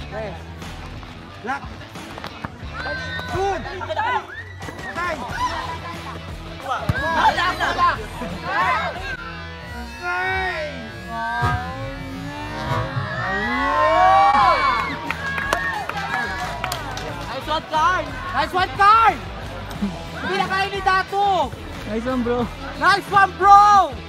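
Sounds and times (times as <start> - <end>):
music: 0.0 - 24.0.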